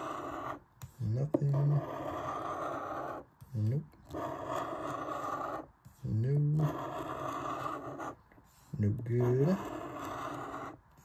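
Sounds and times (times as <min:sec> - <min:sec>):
coin scratching lottery ticket: 0:00.0 - 0:03.3, 0:04.1 - 0:05.7, 0:06.5 - 0:08.2, 0:09.2 - 0:10.8.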